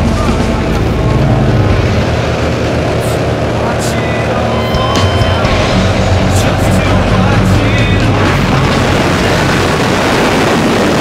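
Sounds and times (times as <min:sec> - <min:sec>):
airplane engine and propeller drone: 0:00.0 - 0:11.0
wind rushing: 0:00.0 - 0:11.0.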